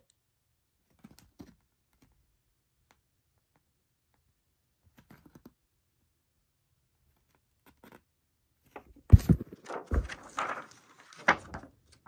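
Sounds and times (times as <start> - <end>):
paper cover rustling and clicking: 8.7 - 12.0.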